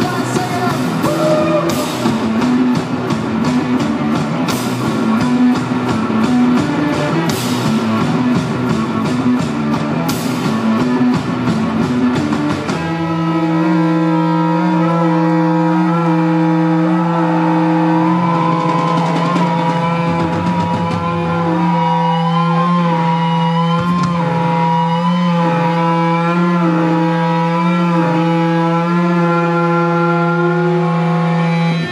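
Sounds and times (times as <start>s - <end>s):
sustained guitar and bass drone: 0.0s - 31.9s
wavering feedback tones: 18.0s - 31.9s.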